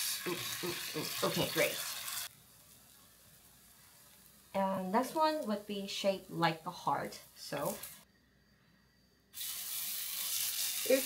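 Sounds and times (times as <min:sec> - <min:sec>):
batter sizzling in hot oil: 0:00.0 - 0:08.1, 0:09.3 - 0:11.0.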